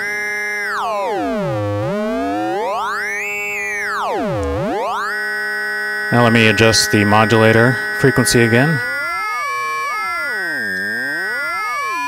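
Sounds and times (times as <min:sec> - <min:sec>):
gliding synthesizer pitches: 0:00.0 - 0:12.0
steady synthesizer tones: 0:00.0 - 0:12.0.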